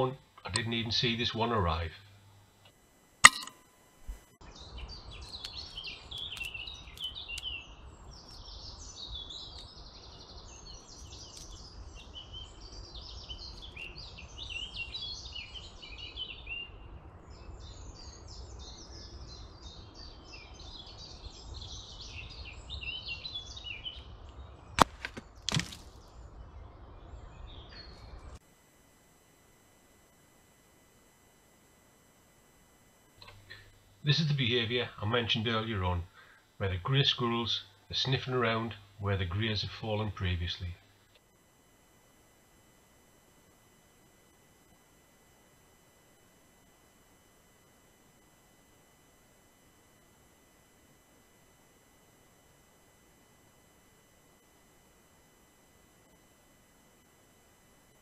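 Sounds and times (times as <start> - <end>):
small birds chirping: 4.4 - 28.4
sharp cracks: 24.8 - 25.9.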